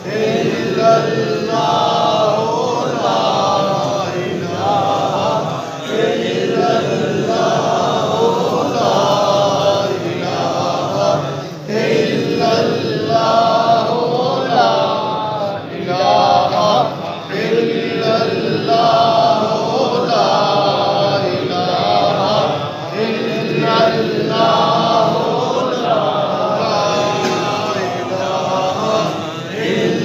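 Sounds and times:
men chanting in unison: 0:00.0 - 0:30.0.

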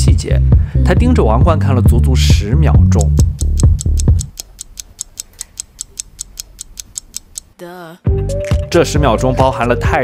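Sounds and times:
clock ticking: 0:02.8 - 0:07.6.

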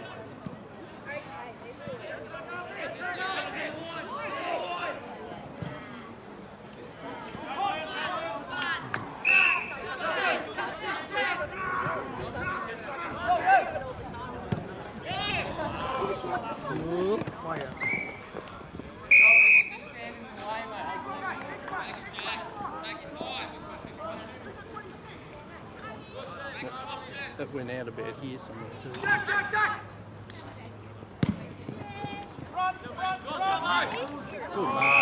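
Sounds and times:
short whistle blasts: 0:09.2 - 0:09.8, 0:17.8 - 0:18.2, 0:19.1 - 0:19.8, 0:34.8 - 0:35.0
voices calling out: 0:28.6 - 0:35.0.

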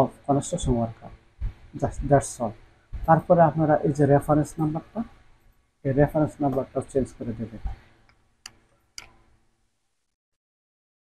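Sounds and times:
computer mouse clicks: 0:08.0 - 0:09.3.

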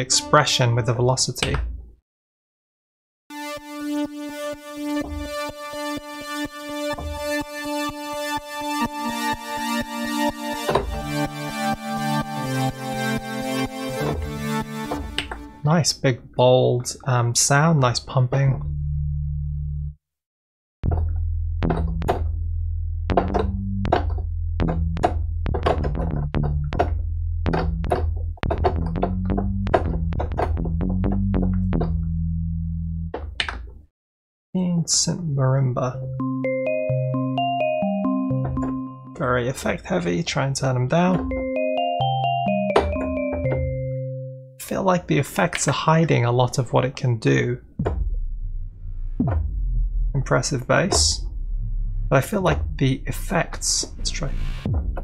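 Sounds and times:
synthesizer chord pumping rhythmically: 0:03.3 - 0:15.6, 0:23.1 - 0:32.6, 0:36.0 - 0:39.2, 0:41.2 - 0:44.6
deep low thump: 0:20.8 - 0:22.5, 0:23.1 - 0:32.2, 0:47.8 - 0:55.0.

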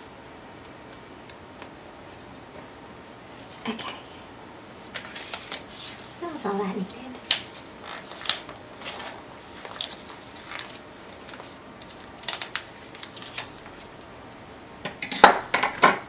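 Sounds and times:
paper rustling: 0:04.8 - 0:06.2, 0:07.2 - 0:13.9
plastic crinkling: 0:06.8 - 0:13.9.

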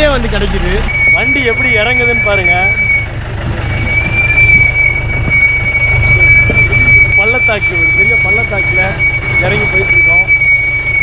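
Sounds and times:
car engine rumble: 0:00.0 - 0:11.0
high-pitched whine: 0:00.9 - 0:11.0.

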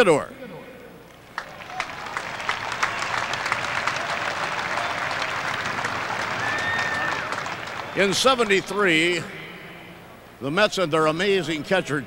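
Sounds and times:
stadium crowd applauding: 0:01.2 - 0:09.2.

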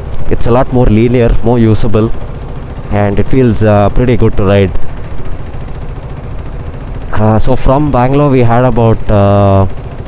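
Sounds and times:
motorcycle engine at low revs: 0:00.0 - 0:10.0
surrounding traffic noise: 0:00.0 - 0:10.0.

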